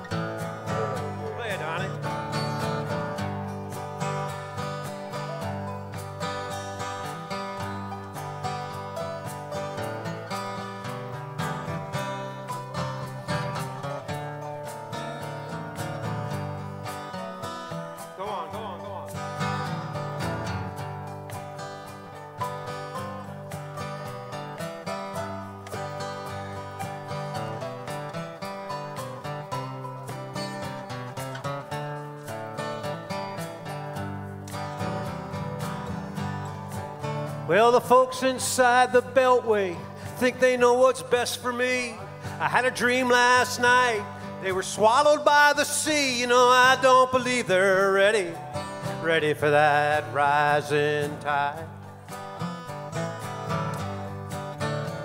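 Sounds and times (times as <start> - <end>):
acoustic guitars playing country music: 0.0 - 55.0.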